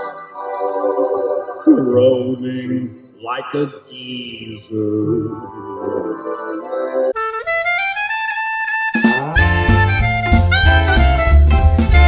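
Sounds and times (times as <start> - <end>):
jazzy theme music: 5.1 - 12.0.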